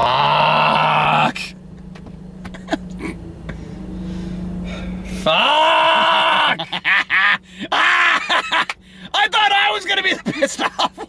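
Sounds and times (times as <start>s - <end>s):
men laughing hard: 2.5s - 3.2s, 5.3s - 8.8s, 10.1s - 11.0s
catches of breath: 3.5s - 5.3s, 8.8s - 9.1s.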